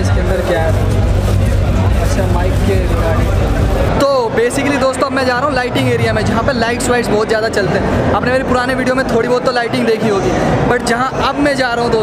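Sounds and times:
low rumble: 0.0s - 4.0s
babble of voices: 0.0s - 12.0s
man talking close to microphone: 0.0s - 12.0s.

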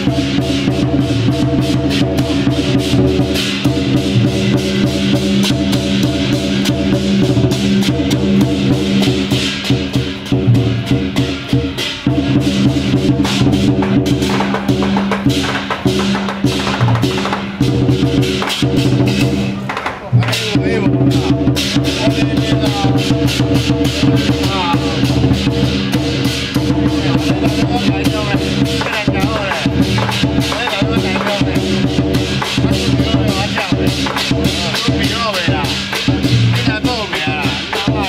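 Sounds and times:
cymbal strikes: 0.0s - 38.0s
fast dense drumming: 0.0s - 38.0s.

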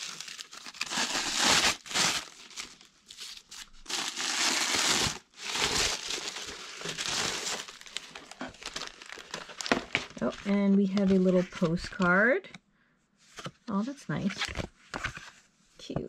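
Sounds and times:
tissue paper crinkling: 0.0s - 12.2s.

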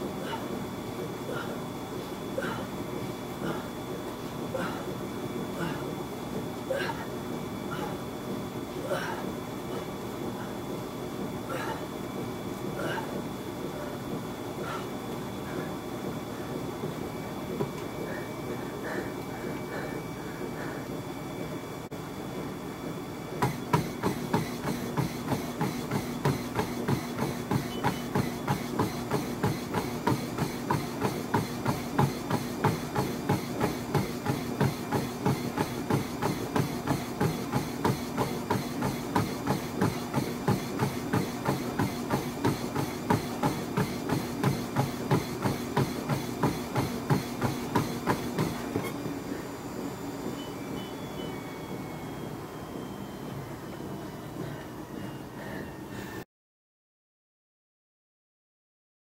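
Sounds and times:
feet pounding a treadmill belt: 0.0s - 56.2s
treadmill motor hum: 0.0s - 56.2s.

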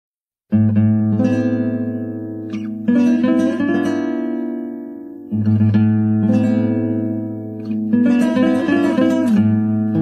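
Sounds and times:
solo acoustic guitar: 0.5s - 10.0s.

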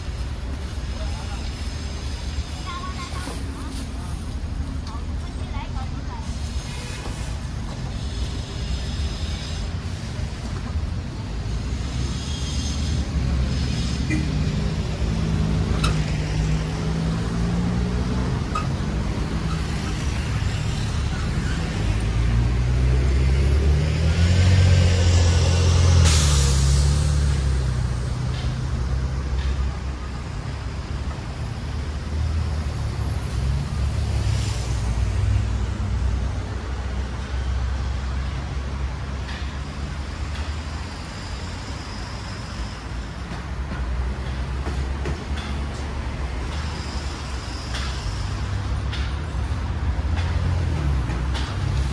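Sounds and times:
heavy vehicle engine: 0.0s - 51.9s
traffic rumble: 0.0s - 51.9s
sharp air brake hiss: 6.1s - 10.4s, 11.5s - 14.8s, 24.4s - 27.8s, 46.4s - 49.1s.

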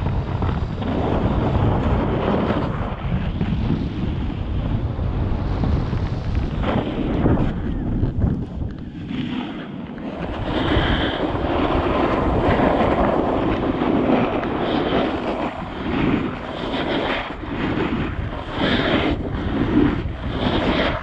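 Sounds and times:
snowboard scraping over snow: 0.0s - 21.0s
wind rushing over microphone: 0.0s - 21.0s.

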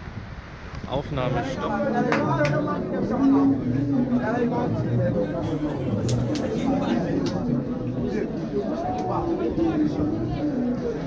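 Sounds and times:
people talking: 0.8s - 11.0s.

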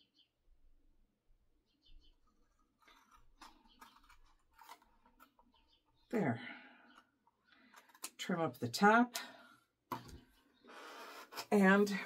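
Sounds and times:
paper rustling and scraping: 2.8s - 5.4s.

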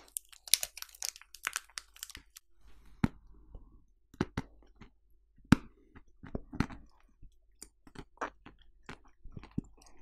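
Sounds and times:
mouth chewing food: 4.2s - 10.0s.

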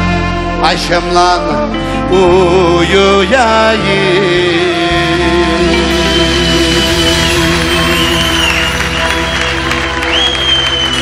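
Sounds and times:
live band sustained chord: 0.0s - 11.0s
audience applauding: 5.9s - 11.0s.

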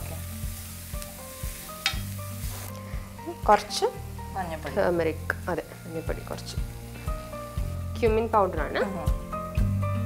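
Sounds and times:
masala sizzling in a pan: 0.0s - 10.0s
spoon scraping a pan: 1.0s - 2.8s.

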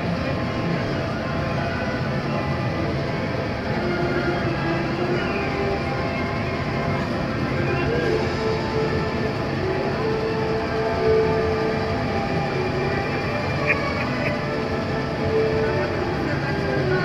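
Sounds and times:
background music: 0.0s - 17.0s
monorail train running: 0.0s - 17.0s.

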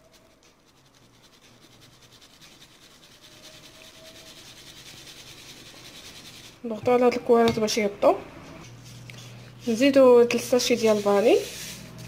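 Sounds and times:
flour sifting through sieve: 0.0s - 8.0s, 8.7s - 12.0s.

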